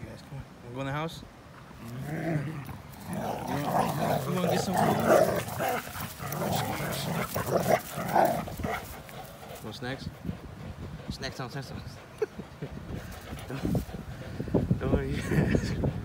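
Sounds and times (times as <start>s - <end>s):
dogs growling: 1.6s - 11.1s, 11.8s - 16.0s.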